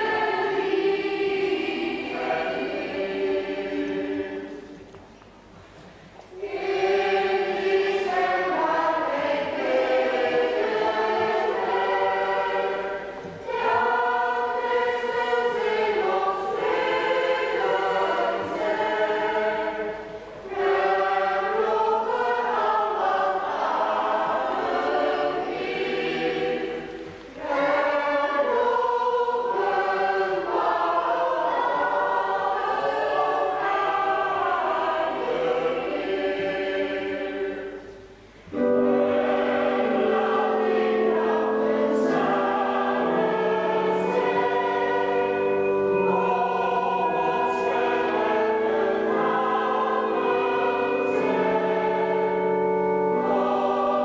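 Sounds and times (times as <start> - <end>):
choir singing a hymn: 0.0 - 4.9, 6.3 - 54.0.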